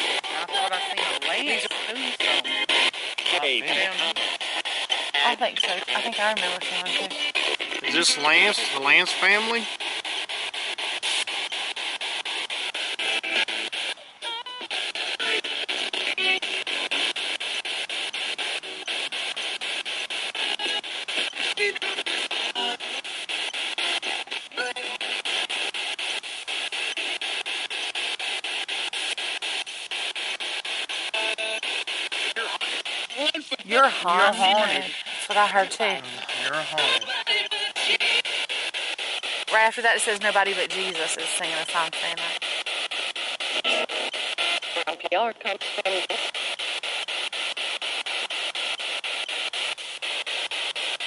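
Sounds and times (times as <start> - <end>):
choppy radio static hiss: 0.0 - 51.0
scraps of broadcast voices: 0.0 - 51.0
snippets of radio music: 0.0 - 51.0.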